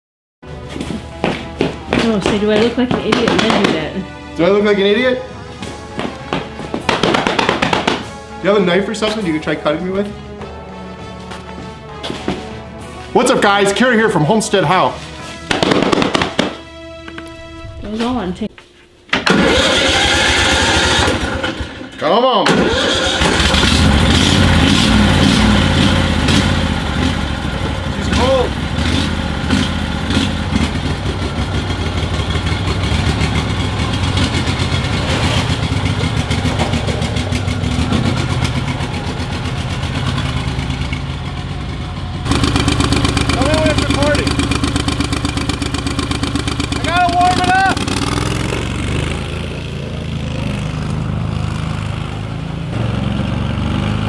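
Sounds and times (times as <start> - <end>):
vehicle engine starting and running: 19.1 - 54.0.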